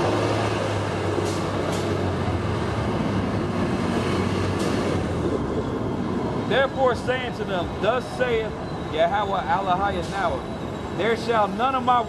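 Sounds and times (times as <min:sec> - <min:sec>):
bus engine rumbling: 0:00.0 - 0:12.0.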